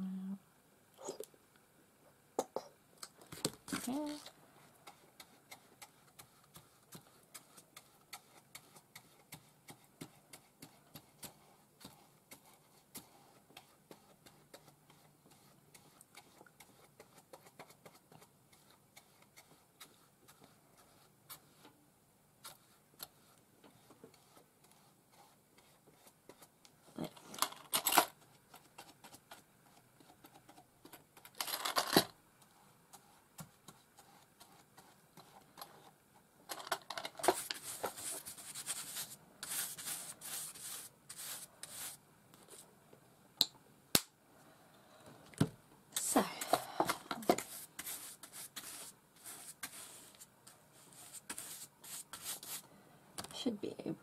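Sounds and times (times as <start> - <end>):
scratchy brush strokes: 3.8 - 21.8, 22.4 - 27.0, 32.4 - 36.0, 37.2 - 42.7, 46.0 - 52.7.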